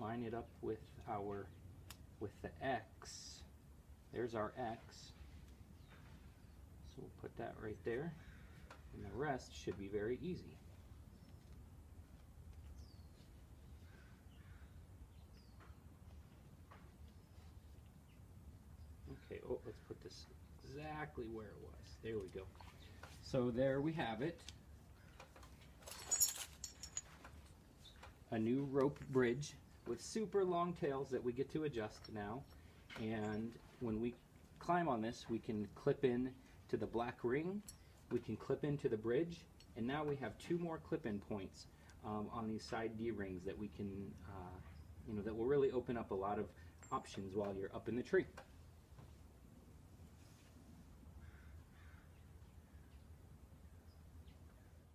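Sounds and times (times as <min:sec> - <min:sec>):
distant bird calls: 0:08.1 - 0:09.2, 0:12.5 - 0:20.7, 0:22.6 - 0:24.0, 0:24.7 - 0:26.2, 0:51.1 - 0:54.8
metal harness buckles clinking: 0:25.1 - 0:28.1
nylon webbing rustling: 0:25.3 - 0:27.9.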